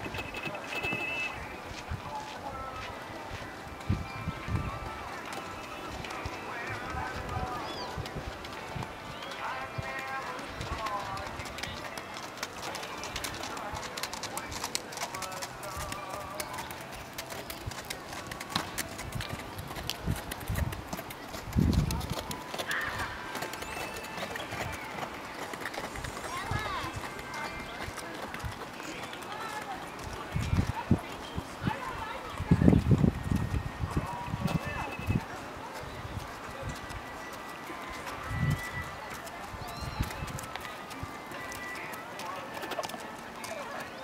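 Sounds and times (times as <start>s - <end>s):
people talking: 0.0s - 17.1s, 17.7s - 44.0s
horse hoofbeats on sand: 0.0s - 44.0s.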